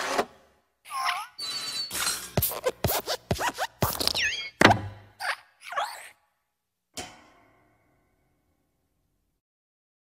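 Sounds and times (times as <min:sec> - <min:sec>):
falling squeak: 0:01.0 - 0:04.6
cartoon springy hops: 0:01.8 - 0:05.0.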